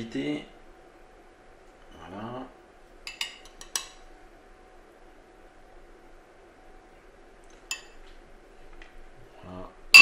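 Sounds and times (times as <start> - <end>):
metal spoon clinking on bowl: 3.1 - 4.0, 7.7 - 8.0.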